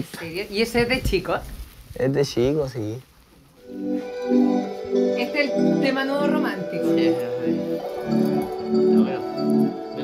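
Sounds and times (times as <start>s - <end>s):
recorded song with keyboard chords: 3.6s - 10.0s.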